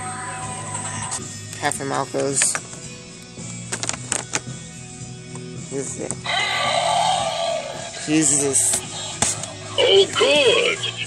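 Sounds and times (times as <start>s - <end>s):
electronic toy cry: 6.3s - 7.9s.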